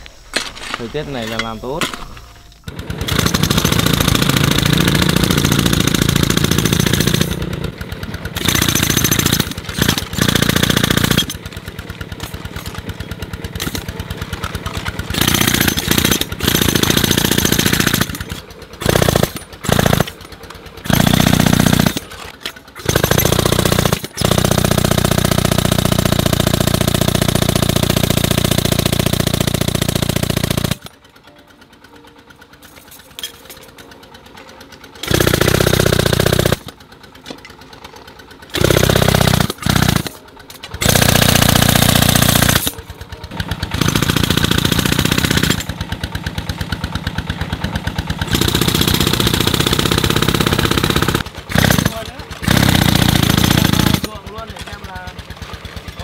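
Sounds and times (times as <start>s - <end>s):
jackhammer hammering rock: 0.4s - 56.0s
air compressor running: 0.5s - 56.0s.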